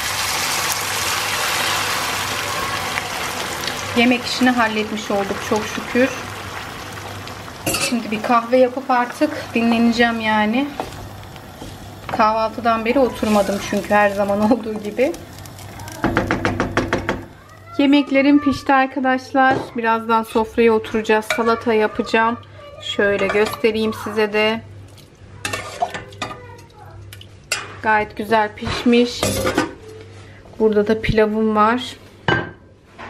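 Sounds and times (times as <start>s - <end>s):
water pouring into hot pan: 0.0s - 16.4s
hissing and sizzling fat: 0.0s - 18.6s
wooden spoon knocking on pot: 16.0s - 17.4s.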